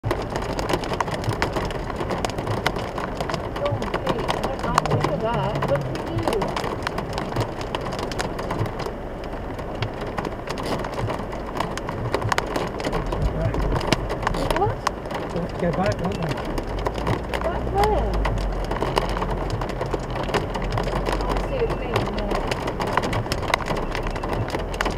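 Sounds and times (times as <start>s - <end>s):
car engine running low: 0.0s - 24.9s
heavy rain on car roof: 0.0s - 24.9s.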